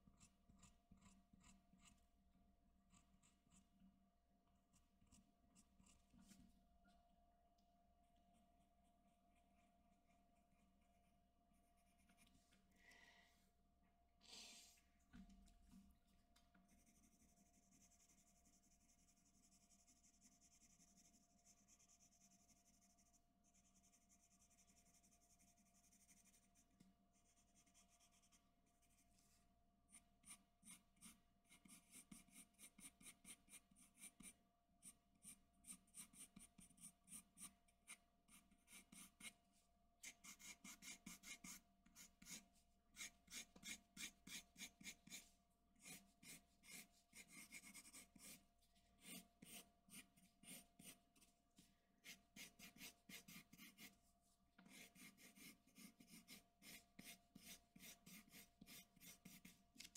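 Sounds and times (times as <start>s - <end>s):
pencil scratching on paper: 0.0s - 2.1s, 2.8s - 3.8s, 4.7s - 6.4s, 8.3s - 12.4s, 16.7s - 51.4s, 52.0s - 59.9s.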